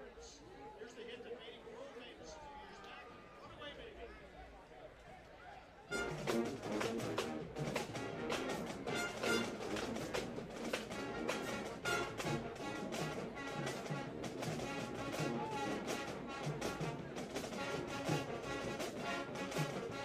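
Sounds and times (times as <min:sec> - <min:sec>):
marching band brass: 0:05.9 - 0:20.0
steady driving drumbeat: 0:05.9 - 0:20.0.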